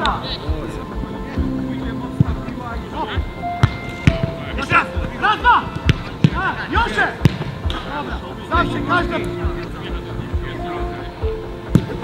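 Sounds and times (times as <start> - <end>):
boot kicking football: 5.8 - 7.9.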